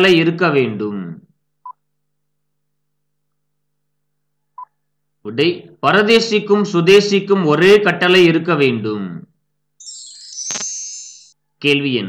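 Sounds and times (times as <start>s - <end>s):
short electronic beep: 9.8s - 11.4s.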